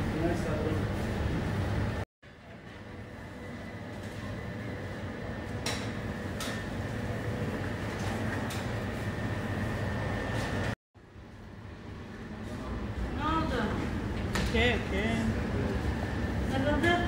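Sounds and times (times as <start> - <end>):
shop background hum: 0.0 - 17.0.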